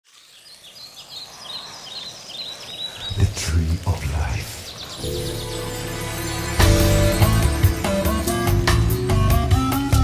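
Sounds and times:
faint outdoor hiss: 0.1s - 8.7s
birds chirping: 0.1s - 10.0s.

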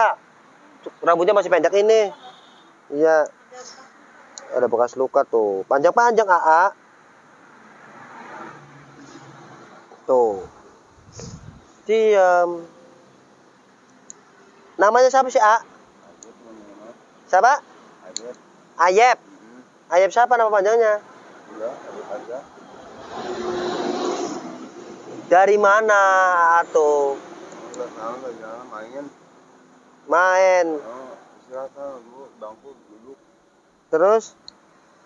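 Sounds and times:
faint steady engine hum: 0.0s - 35.0s
vehicle passing on road: 0.0s - 35.0s.

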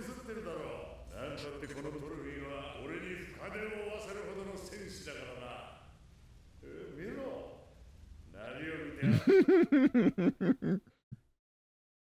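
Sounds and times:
person laughing: 9.0s - 10.9s.

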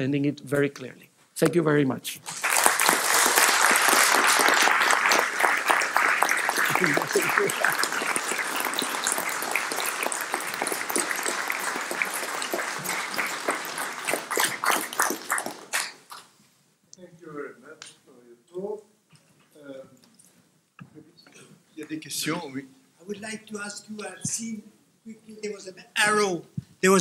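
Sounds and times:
audience applauding: 2.2s - 16.3s.

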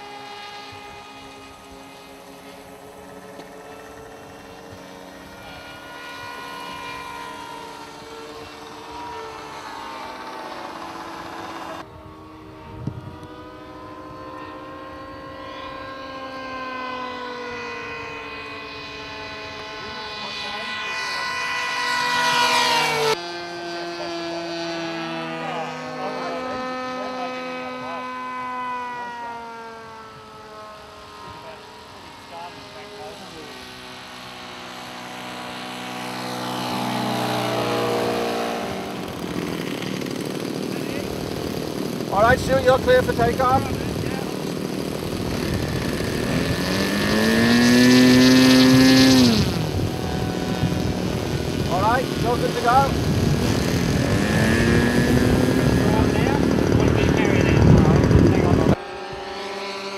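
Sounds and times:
model airplane engines: 0.0s - 59.9s.

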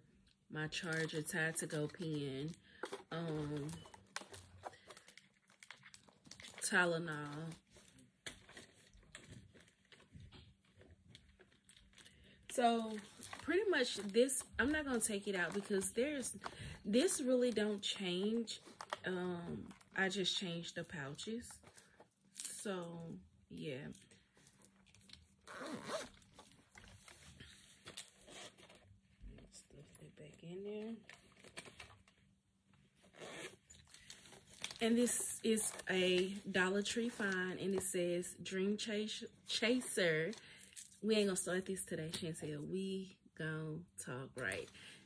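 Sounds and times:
soft rustles of small items: 0.0s - 43.1s, 44.3s - 45.0s
zipper being pulled: 25.4s - 26.6s, 33.0s - 33.9s.

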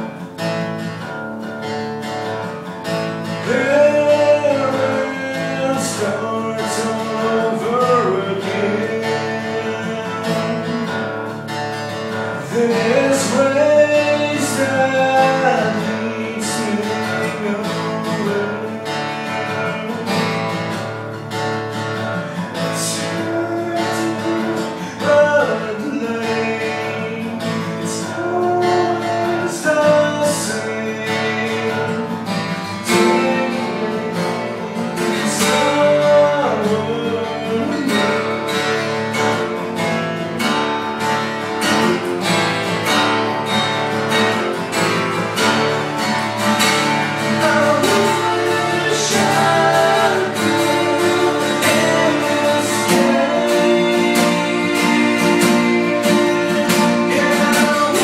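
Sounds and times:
acoustic guitars playing: 0.0s - 58.0s
person singing: 3.2s - 11.0s, 12.3s - 20.5s, 22.2s - 40.5s, 44.1s - 58.0s.

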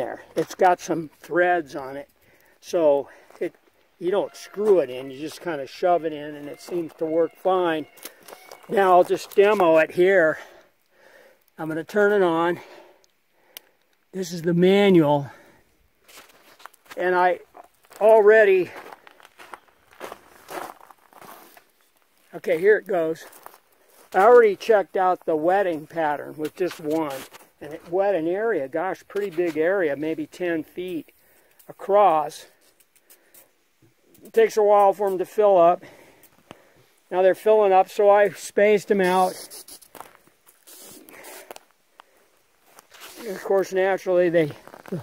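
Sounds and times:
footsteps on gravel: 3.1s - 9.9s, 16.0s - 28.2s, 29.2s - 29.8s, 39.8s - 40.7s, 42.6s - 45.0s
faint clicks: 13.0s - 14.1s.

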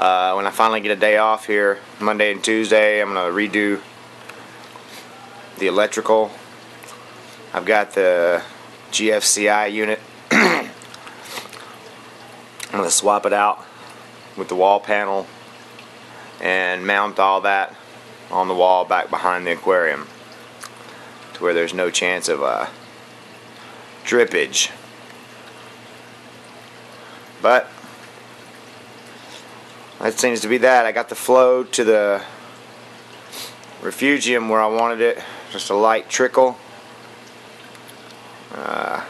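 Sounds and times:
skimmer bubbles: 0.0s - 39.0s
man clearing throat: 10.3s - 10.8s.

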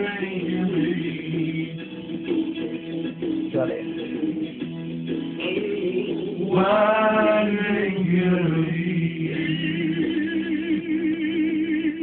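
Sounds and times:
old man singing: 0.0s - 1.8s, 5.4s - 12.0s
backing music: 0.0s - 12.0s.

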